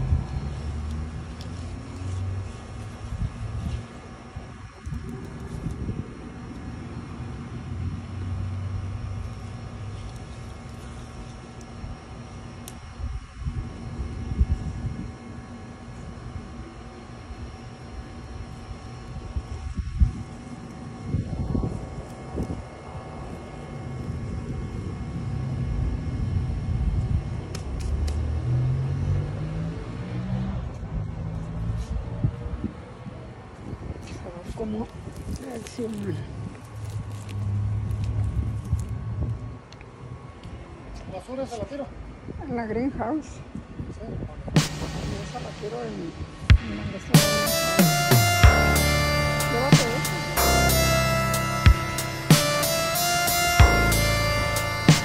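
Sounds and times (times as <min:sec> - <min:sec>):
engine rising in pitch: 0:00.0 - 0:02.5, 0:28.0 - 0:31.8, 0:47.1 - 0:55.0
low rumble of traffic: 0:00.0 - 0:55.0.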